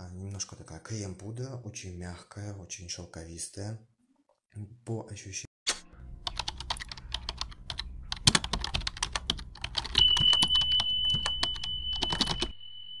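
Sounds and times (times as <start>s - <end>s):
keyboard typing clicks: 6.2s - 12.5s
steady high beep: 9.9s - 13.0s.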